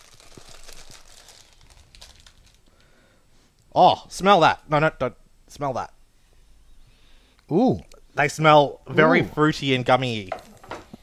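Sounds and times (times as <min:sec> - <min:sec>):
plastic bag crinkling: 0:00.0 - 0:03.0.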